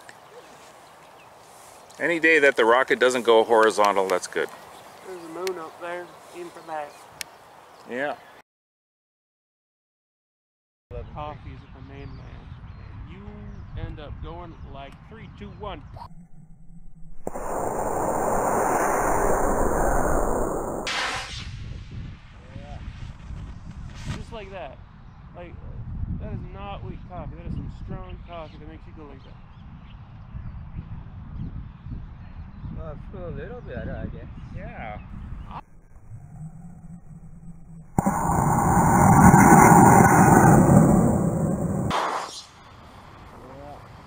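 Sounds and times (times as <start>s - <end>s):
outdoor background noise: 0.0s - 8.4s, 35.4s - 44.0s
wind rumble on microphone: 10.9s - 41.9s
model rocket motor roaring: 36.0s - 41.9s.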